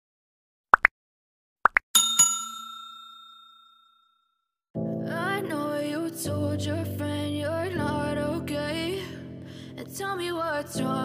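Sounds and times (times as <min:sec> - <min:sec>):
notification bell ding: 0:02.0 - 0:04.0.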